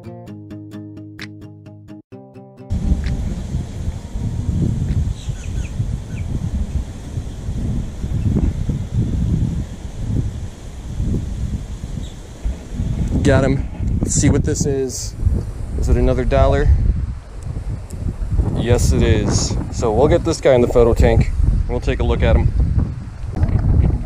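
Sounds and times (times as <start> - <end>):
guitar background music: 0.0 - 5.1
wind buffeting microphone: 2.7 - 24.0.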